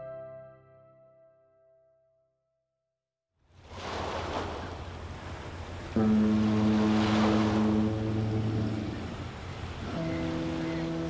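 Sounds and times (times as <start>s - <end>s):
ocean waves: 3.4s - 11.0s
deep horn-like chord: 6.0s - 11.0s.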